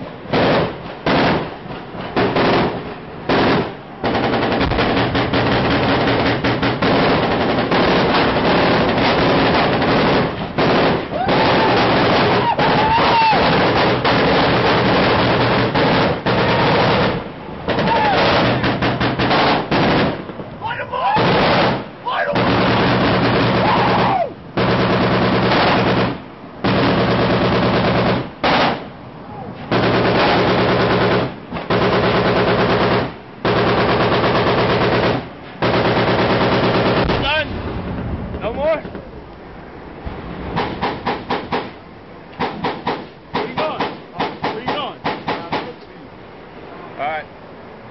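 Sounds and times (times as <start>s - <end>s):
machine-gun fire: 0.3s - 1.5s, 2.2s - 20.3s, 21.2s - 24.0s, 24.6s - 28.9s, 29.7s - 37.5s, 40.5s - 41.8s, 42.4s - 45.8s.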